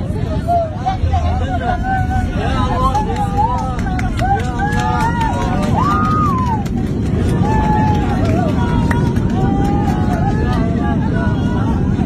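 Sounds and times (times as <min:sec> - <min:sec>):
frightened voices overlapping: 0:00.0 - 0:06.6
airliner cabin rumble: 0:00.0 - 0:12.0.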